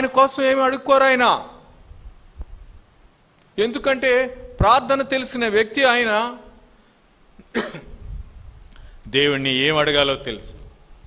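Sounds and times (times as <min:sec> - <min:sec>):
low microphone rumble: 0:01.6 - 0:03.1, 0:07.9 - 0:09.0
man coughing: 0:07.4 - 0:08.0.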